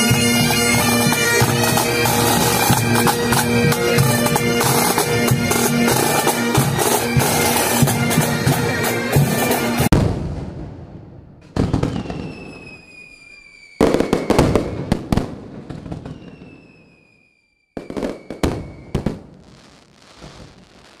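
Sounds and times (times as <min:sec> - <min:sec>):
firework bangs and crackles: 0:06.6 - 0:21.0
falling firework whistle: 0:11.6 - 0:21.0.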